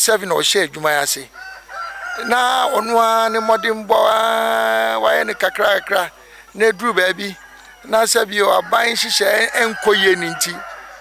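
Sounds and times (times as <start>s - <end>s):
chickens calling: 0.8s - 11.0s.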